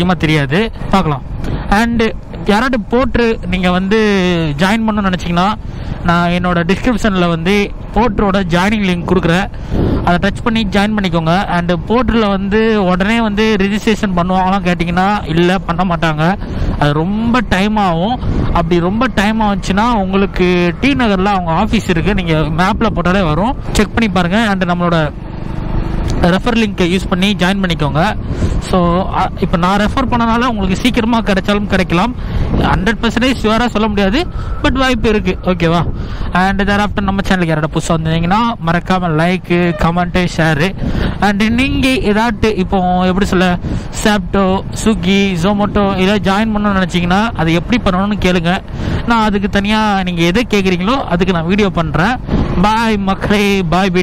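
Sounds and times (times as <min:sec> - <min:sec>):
man talking: 0:00.0 - 0:25.2, 0:26.1 - 0:54.0
motorcycle running: 0:00.0 - 0:54.0
wind noise: 0:00.0 - 0:54.0.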